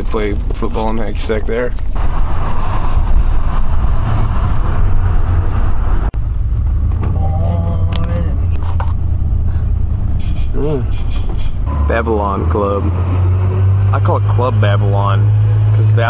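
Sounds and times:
vehicle road noise from inside: 0.0 - 16.0.

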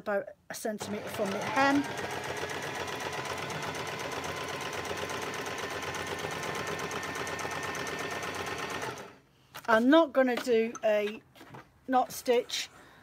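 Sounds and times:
sewing machine running: 0.8 - 9.2.

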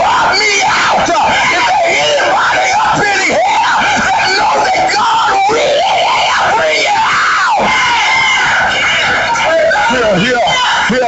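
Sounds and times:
man preaching in shouted voice: 0.0 - 7.0, 9.3 - 11.0.

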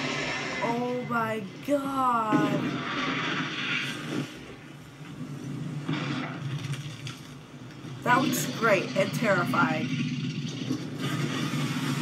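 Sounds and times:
dragon breathing fire: 0.0 - 0.8.

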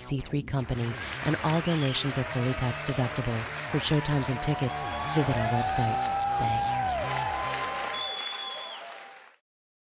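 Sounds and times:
audience applauding: 0.6 - 9.4.

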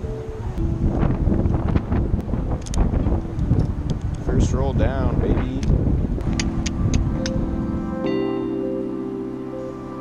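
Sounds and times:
wind buffeting microphone: 0.0 - 8.1.

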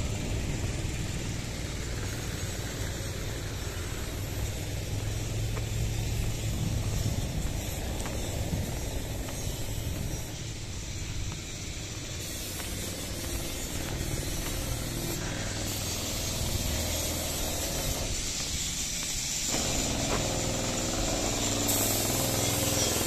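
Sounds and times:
go-kart engine drone: 0.0 - 23.0.

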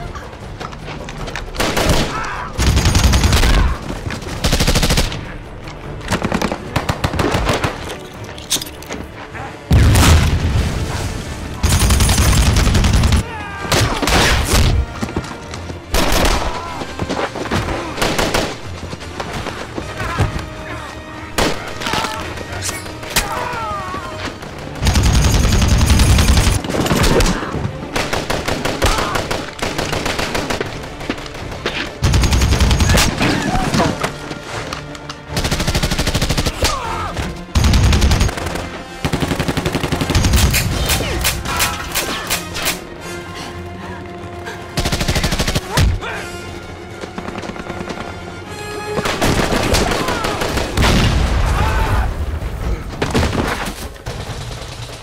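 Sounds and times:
machine-gun fire: 24.8 - 26.6.

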